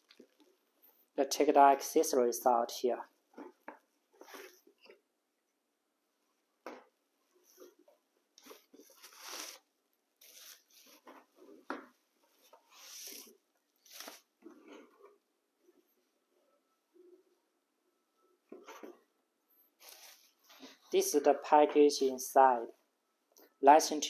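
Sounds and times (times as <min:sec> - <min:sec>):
plastic and bubble wrap crinkling: 0:08.4 - 0:11.0, 0:12.6 - 0:14.4.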